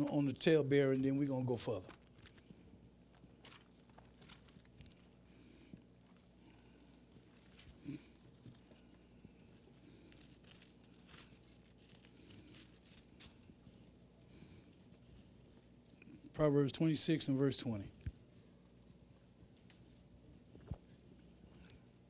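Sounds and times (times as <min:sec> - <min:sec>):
pages being turned: 0:03.1 - 0:05.0.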